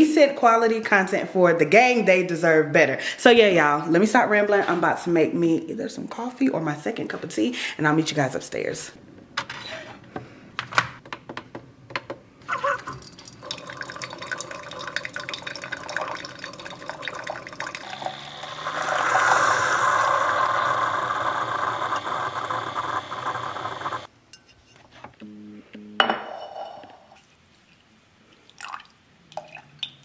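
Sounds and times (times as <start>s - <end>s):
coffee streaming into a mug: 12.8s - 24.1s
coffee machine running: 13.7s - 24.1s.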